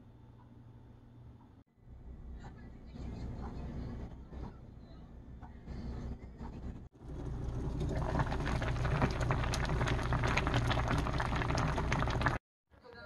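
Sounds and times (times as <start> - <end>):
stew boiling and bubbling: 6.9 - 12.4.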